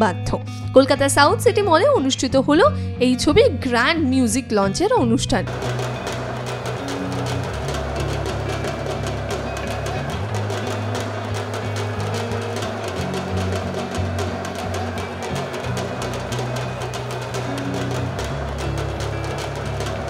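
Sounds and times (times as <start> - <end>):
drums beaten rapidly with sticks: 5.5 - 20.0
loud music with deep bass: 5.5 - 20.0.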